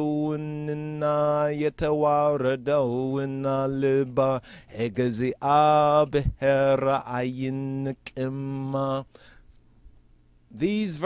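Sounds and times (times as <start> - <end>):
man chanting in monotone: 0.0 - 9.1, 10.5 - 11.0.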